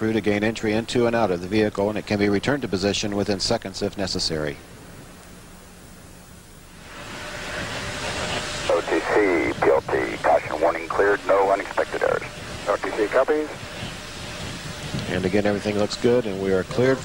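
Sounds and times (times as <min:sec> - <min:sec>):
faint hum: 0:00.0 - 0:17.0
man speaking over radio: 0:08.7 - 0:13.6.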